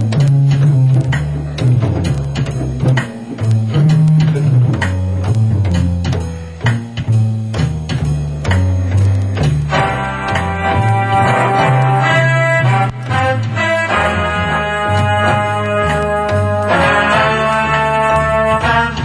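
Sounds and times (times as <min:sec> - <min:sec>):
organ rhythm unit drums: 0:00.0 - 0:19.0
organ walking bass line: 0:00.0 - 0:19.0
sustained brass organ chords: 0:09.7 - 0:19.0.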